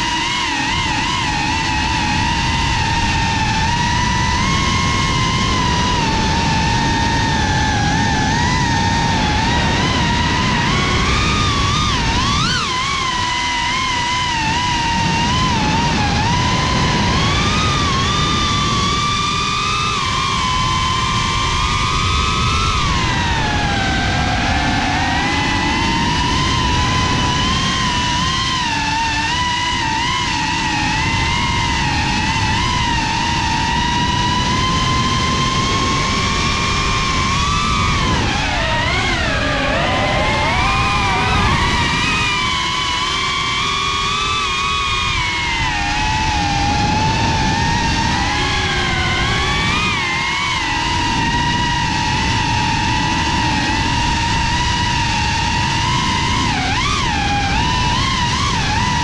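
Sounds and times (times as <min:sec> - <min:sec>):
drone motors whining: 0:00.0 - 0:59.0
wind rushing: 0:34.9 - 0:44.0.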